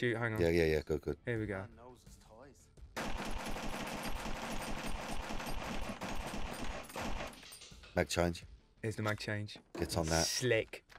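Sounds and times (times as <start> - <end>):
pistol firing rapidly: 3.0 - 7.4.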